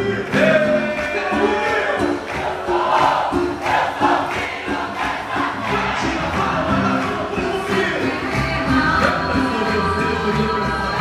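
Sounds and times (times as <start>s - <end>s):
crowd shouting and singing: 0.0s - 11.0s
live folk music with drumbeat: 0.0s - 11.0s.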